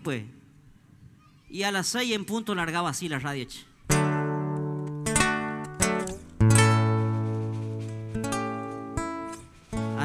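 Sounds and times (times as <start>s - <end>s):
acoustic guitar chords ringing: 3.9s - 10.0s.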